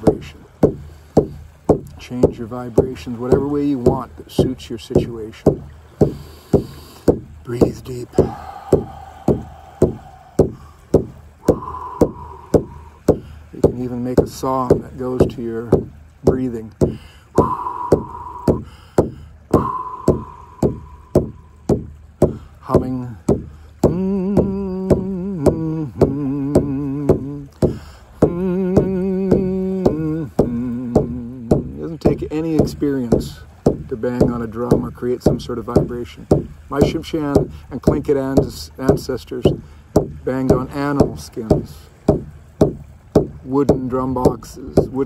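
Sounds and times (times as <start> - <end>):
hand drum beating: 0.0 - 45.0
man humming: 6.6 - 13.2, 16.8 - 21.8, 22.8 - 32.0.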